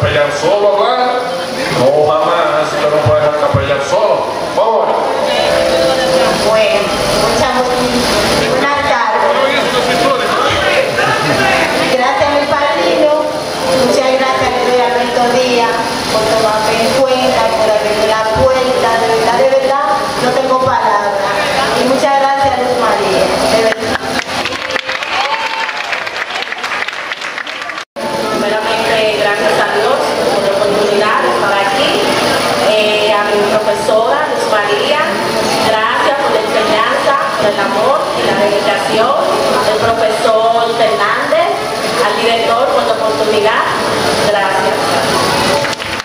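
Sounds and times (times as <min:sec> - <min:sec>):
amplified speech over loudspeakers: 0:00.0 - 0:24.9
crowd voices: 0:00.0 - 0:46.0
audience applauding: 0:09.2 - 0:12.0, 0:23.6 - 0:27.9, 0:45.4 - 0:46.0.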